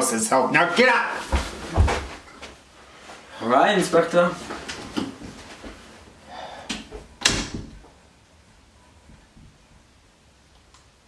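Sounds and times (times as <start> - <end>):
wooden door shutting: 7.2 - 7.8.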